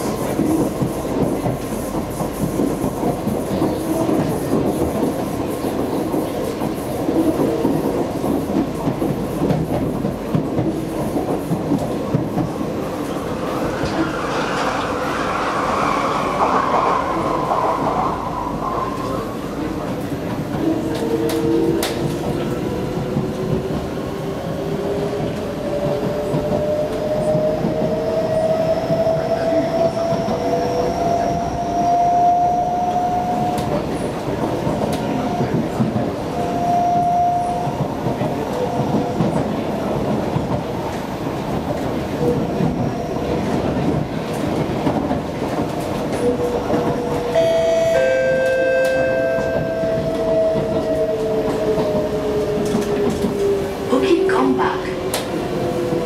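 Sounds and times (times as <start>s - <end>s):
train wheels rumbling on rails: 0.0s - 56.0s
brief high tone: 47.3s - 50.1s.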